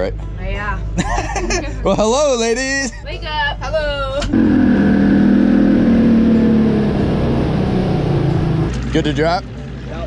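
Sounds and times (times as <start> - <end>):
outboard motor running: 4.3 - 10.0.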